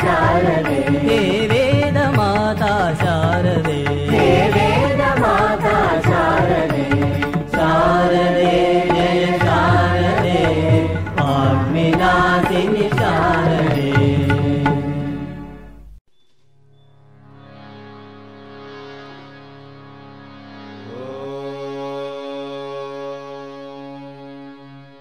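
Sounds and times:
devotional singing: 0.0s - 15.4s, 20.8s - 24.2s.

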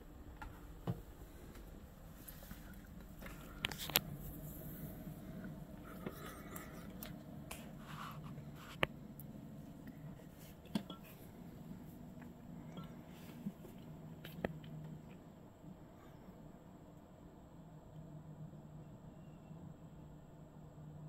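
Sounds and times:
faint low rumble: 0.0s - 21.0s.

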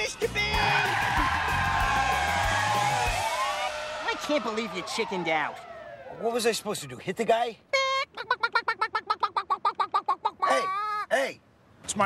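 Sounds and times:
person yelping: 7.7s - 11.3s.

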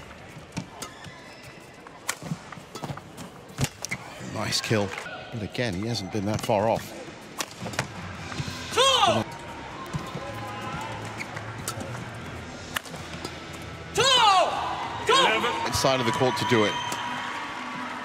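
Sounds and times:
shoes squeaking on court mat: 0.3s - 4.2s, 9.9s - 12.1s.

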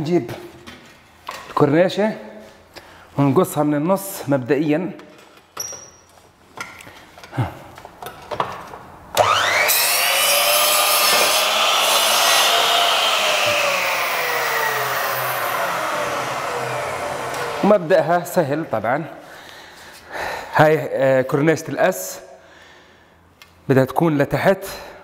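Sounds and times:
miter saw cutting plaster: 9.2s - 18.0s.

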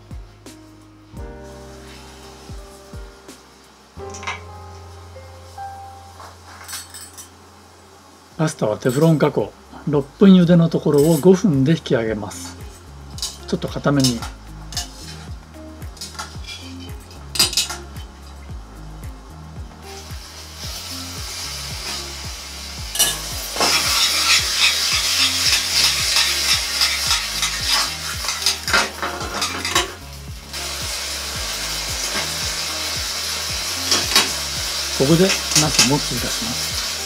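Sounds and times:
pasta sizzling in a pan: 0.0s - 37.0s
metal tongs clinking on pans: 23.0s - 30.0s, 33.9s - 34.3s.

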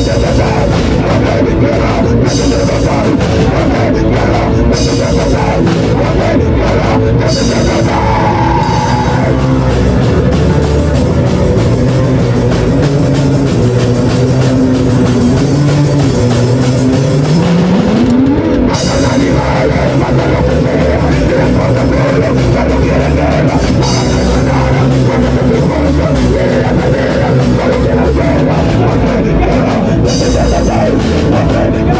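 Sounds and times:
bass guitar: 0.0s - 31.9s
drum kit: 0.0s - 31.9s
electric guitar: 0.0s - 31.9s.

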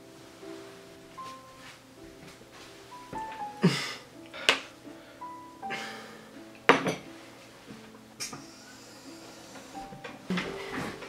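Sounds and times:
plates and cutlery clinking: 6.6s - 11.0s.

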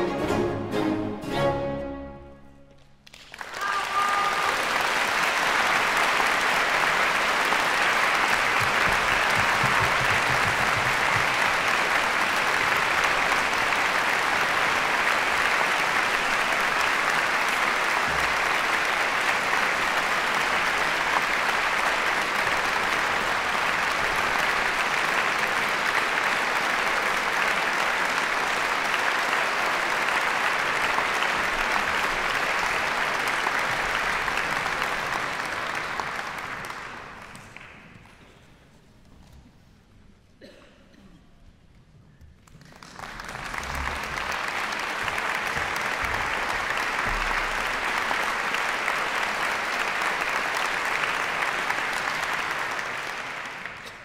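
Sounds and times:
audience applauding: 3.0s - 38.3s, 42.4s - 54.0s.

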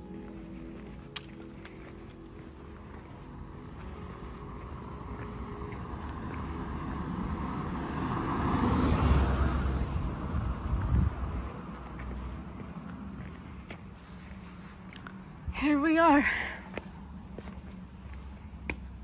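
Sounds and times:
vehicle passing by: 1.8s - 14.8s
wind buffeting microphone: 9.8s - 12.0s.

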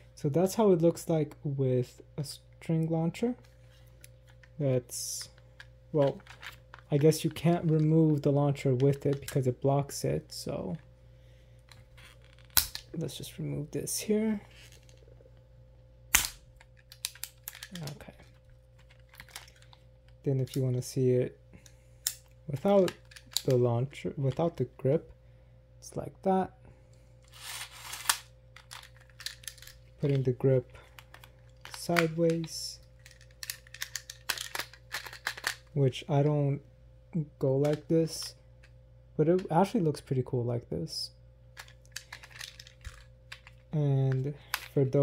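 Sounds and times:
plastic parts clicking: 5.3s - 8.2s, 16.2s - 19.8s, 22.0s - 23.6s, 27.3s - 30.2s, 30.8s - 35.7s, 41.6s - 44.8s
plastic toy parts clicking: 28.0s - 30.2s, 33.0s - 35.6s, 41.6s - 43.6s.

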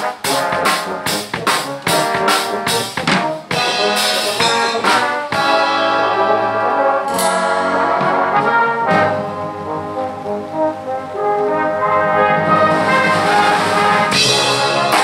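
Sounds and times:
sharp percussion accents: 0.0s - 9.1s, 12.5s - 15.0s
brass band playing chords: 0.0s - 15.0s.

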